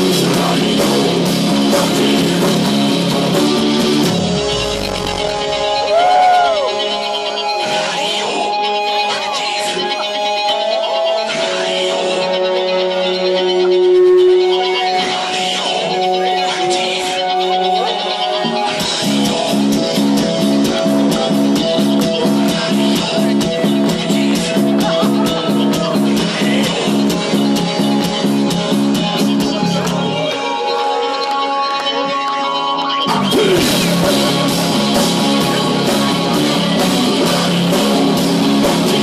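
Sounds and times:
held synth and guitar tones: 0:00.0 - 0:39.0
live rock band: 0:00.0 - 0:39.0.

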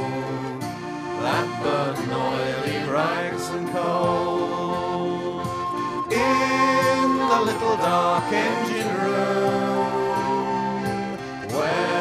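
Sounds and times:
folk music with sliding melody: 0:00.0 - 0:12.0.

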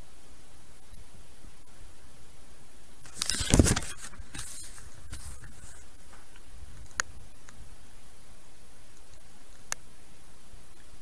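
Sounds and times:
scratchy rustles and clicks: 0:03.0 - 0:07.6.

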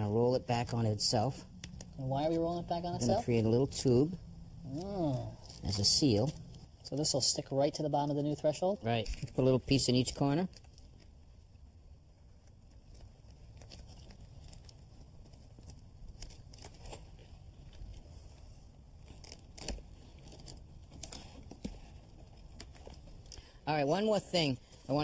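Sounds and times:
sticky membrane crinkling: 0:08.6 - 0:23.6.

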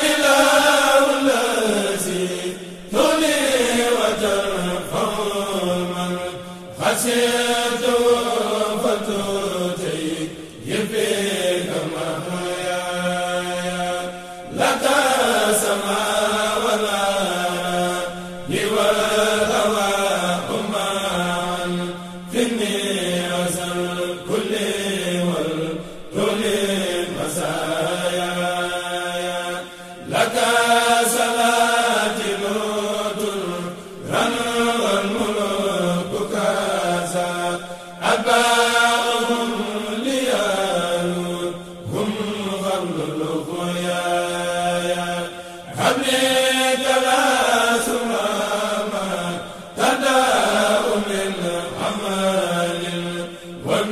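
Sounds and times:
men chanting together: 0:00.0 - 0:53.9.

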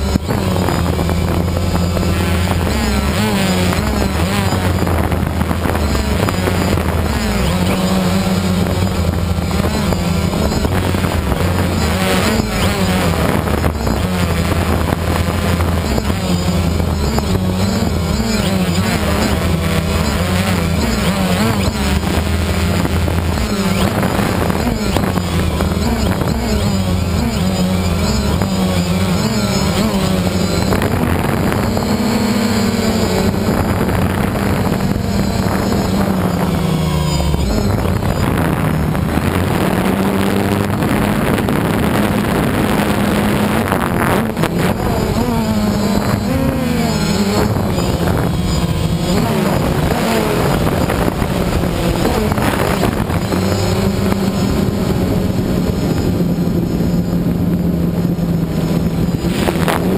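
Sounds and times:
drone propellers buzzing: 0:00.0 - 0:59.9.

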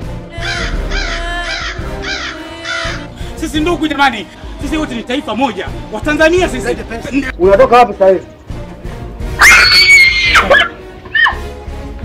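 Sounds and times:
background music: 0:00.0 - 0:12.0
crows cawing: 0:00.4 - 0:03.2.

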